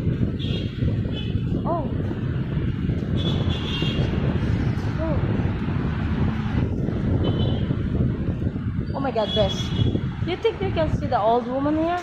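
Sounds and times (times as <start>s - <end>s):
heavy city traffic rumble: 0.0s - 12.0s
wind buffeting microphone: 0.0s - 12.0s.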